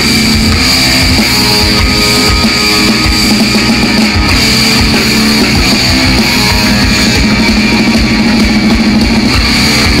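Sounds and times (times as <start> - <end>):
distorted electric guitar: 0.0 - 10.0
drum kit with rapid kick drum: 0.0 - 10.0.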